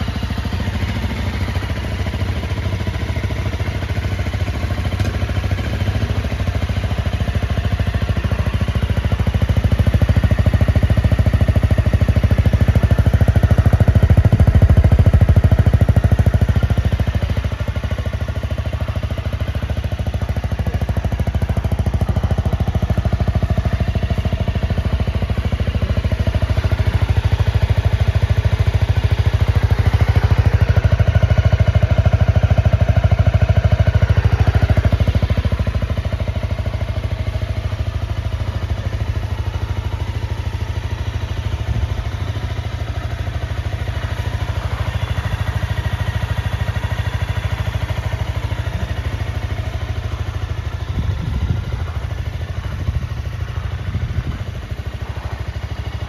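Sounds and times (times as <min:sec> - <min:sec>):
motorcycle engine idling: 0:00.0 - 0:56.0.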